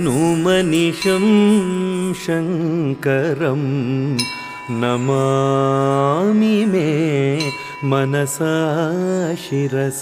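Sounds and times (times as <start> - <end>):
person singing long ornamented notes: 0.0 - 10.0.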